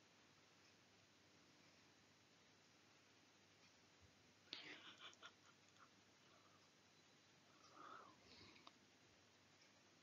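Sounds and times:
soft hissy noise: 0.0s - 10.0s
faint clicks: 7.6s - 8.8s.

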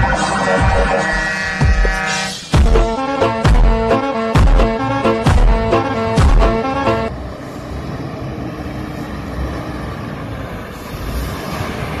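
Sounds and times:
background music: 0.0s - 7.1s
road noise: 0.0s - 12.0s
diesel truck rumbling past: 2.4s - 12.0s.

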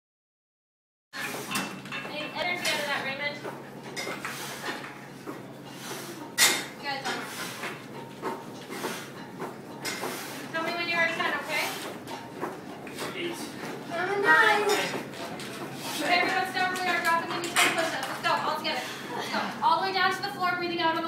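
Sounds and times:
gym equipment clattering: 1.2s - 3.0s
people talking: 2.1s - 3.4s, 6.8s - 7.3s, 10.5s - 11.8s, 13.0s - 15.0s, 15.9s - 21.0s.

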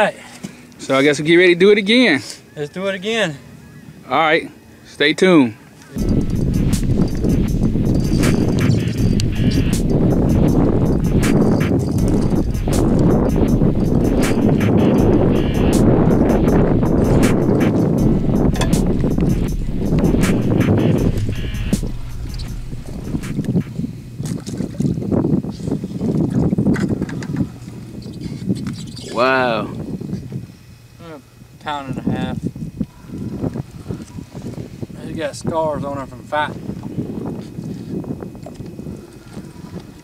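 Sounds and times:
wind buffeting microphone: 5.9s - 30.8s, 31.9s - 40.0s.

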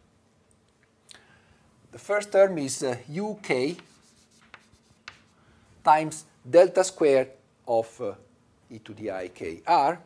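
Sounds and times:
man talking: 1.9s - 4.0s, 5.9s - 10.0s
chalk scraping on blackboard: 3.5s - 5.4s
chalk tapping on blackboard: 3.6s - 5.4s.

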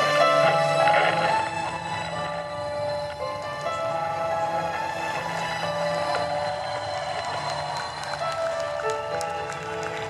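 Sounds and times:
synthesizer melody: 0.0s - 10.0s.

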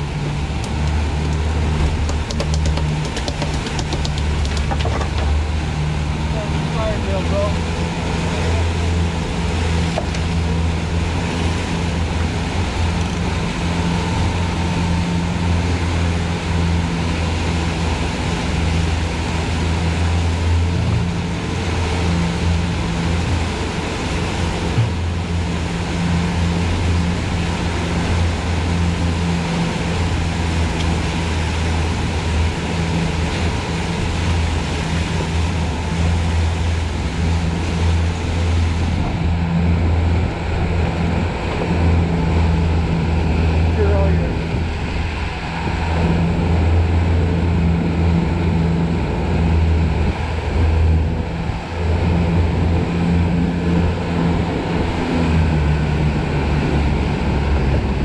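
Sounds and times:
churning wake rushing: 0.0s - 58.0s
outboard motors droning: 0.0s - 58.0s
wind: 0.0s - 58.0s.

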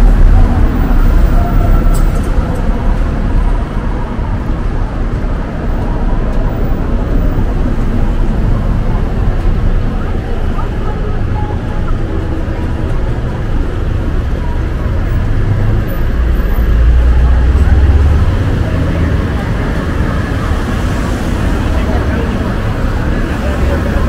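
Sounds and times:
cars passing close by: 0.0s - 24.0s
steady traffic hum: 0.0s - 24.0s.

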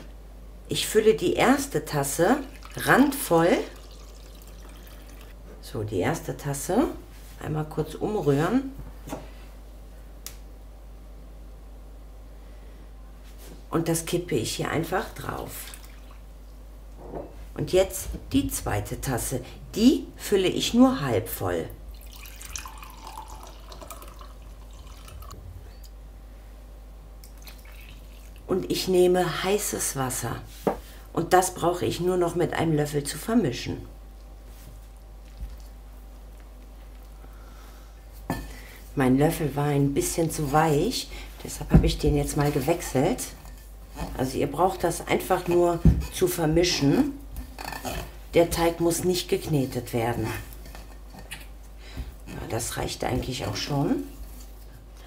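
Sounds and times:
faint low room hum: 0.0s - 55.0s.

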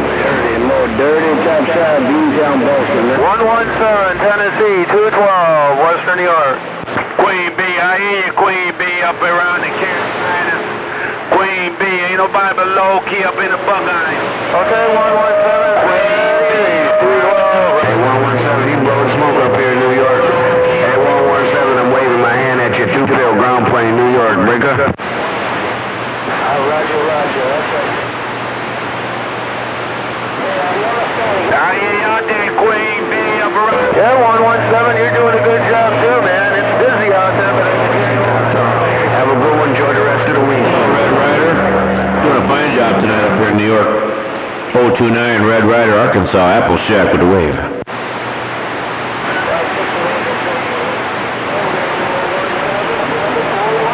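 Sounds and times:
garbled radio voices: 0.0s - 25.0s, 26.2s - 48.0s, 49.0s - 53.9s
low hum: 0.0s - 53.9s.

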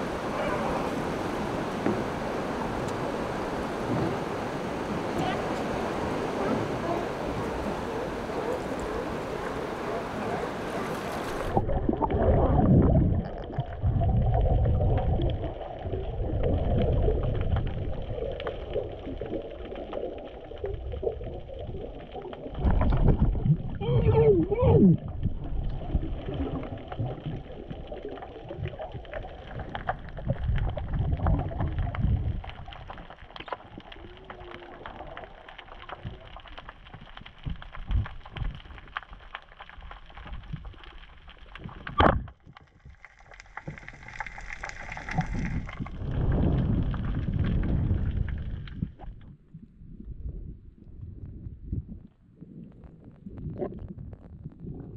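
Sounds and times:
low underwater rumble: 0.0s - 54.9s
muffled voice-like glide: 0.3s - 1.0s, 6.4s - 11.0s.

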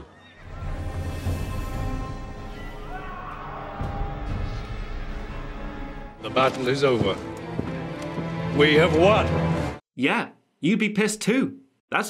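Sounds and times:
dramatic film score: 0.0s - 9.8s.

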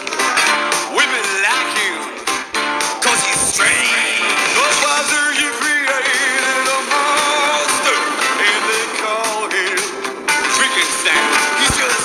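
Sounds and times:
country-rock song: 0.0s - 12.0s.

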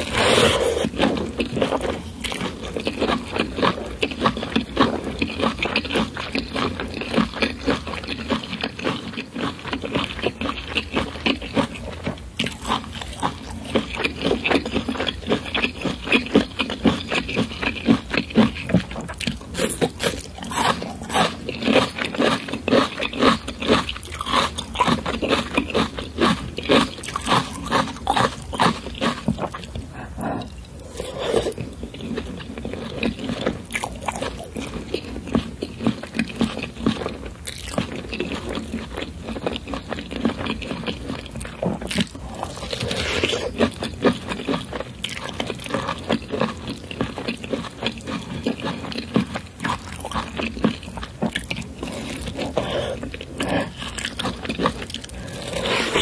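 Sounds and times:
close chewing with mouth sounds: 0.0s - 56.0s.

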